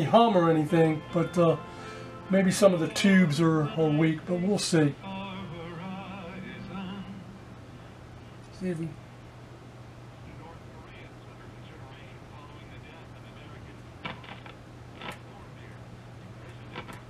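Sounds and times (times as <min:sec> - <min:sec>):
steady low hum: 0:00.0 - 0:17.0
radio audio and static: 0:10.2 - 0:17.0.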